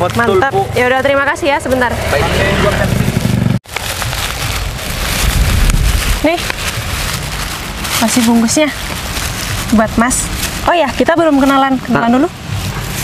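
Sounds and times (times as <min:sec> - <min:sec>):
motorcycle engine rumbling past: 0:00.0 - 0:03.6
wind rumble on microphone: 0:03.1 - 0:13.0.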